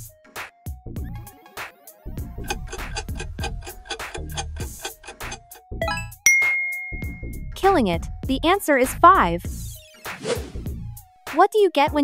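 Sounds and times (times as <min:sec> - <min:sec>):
upbeat quiz music: 0:05.7 - 0:07.8
rising run of chimes: 0:05.8 - 0:07.4
loud bell ding: 0:05.8 - 0:07.5.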